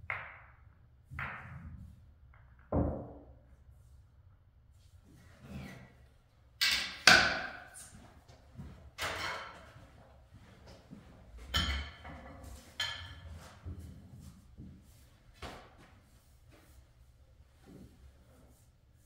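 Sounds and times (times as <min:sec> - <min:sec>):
pool equipment knocks and clacks: 0:09.0 - 0:10.0, 0:11.4 - 0:13.5.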